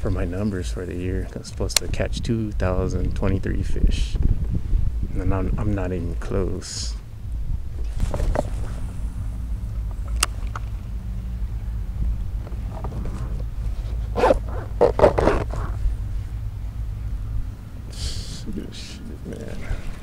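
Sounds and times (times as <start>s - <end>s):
steady low hum: 0.0s - 20.0s
fabric rubbing against microphone: 7.6s - 10.9s, 12.0s - 16.5s.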